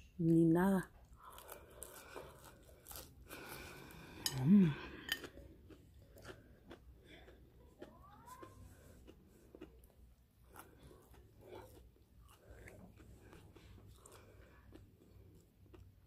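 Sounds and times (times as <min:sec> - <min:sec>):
crunchy chewing: 0:01.0 - 0:16.0
person humming: 0:04.3 - 0:04.8.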